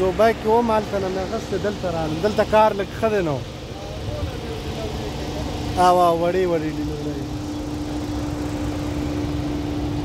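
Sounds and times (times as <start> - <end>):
man speaking: 0.0 - 7.4.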